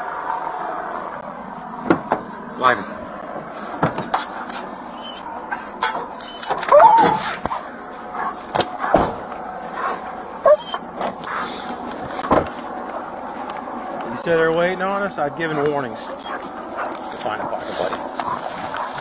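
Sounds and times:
sharp knocks and clicks of gear: 0:01.7 - 0:02.5, 0:03.8 - 0:19.0.

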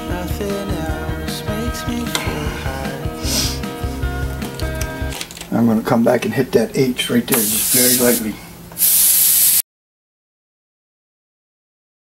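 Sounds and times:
airbrush spraying hiss: 0:03.2 - 0:03.7, 0:07.3 - 0:09.6.

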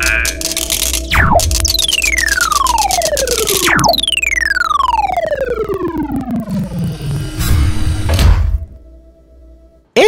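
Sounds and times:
fast even ticking: 0:00.0 - 0:07.3
cartoon downward zip: 0:02.4 - 0:07.7.

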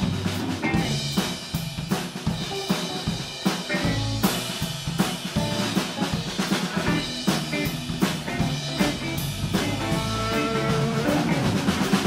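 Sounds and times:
electric guitars: 0:00.0 - 0:01.6, 0:02.2 - 0:12.0
blues band playing: 0:00.0 - 0:12.0
drum kit: 0:00.0 - 0:12.0.

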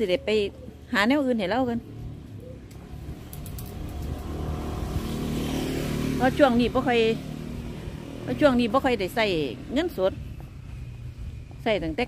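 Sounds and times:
car passing on road: 0:01.9 - 0:11.2.

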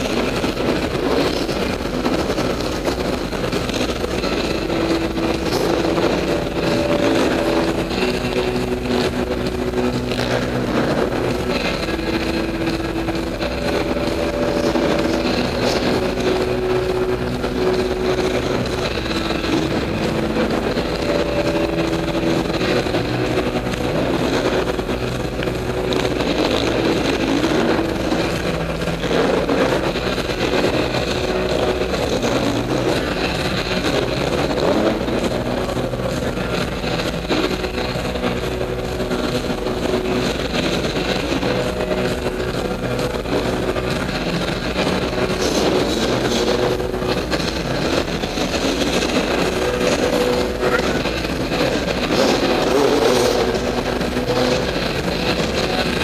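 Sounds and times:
off-road motorcycle engines revving: 0:00.0 - 0:56.0.

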